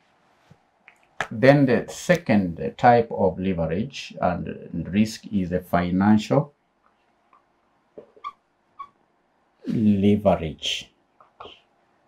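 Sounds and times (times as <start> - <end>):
marker squeaking on whiteboard: 8.0 - 9.0.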